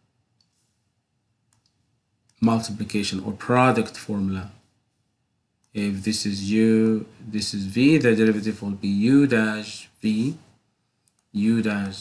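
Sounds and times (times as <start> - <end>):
computer mouse clicks: 0.4 - 0.6, 1.5 - 2.4, 11.0 - 11.3.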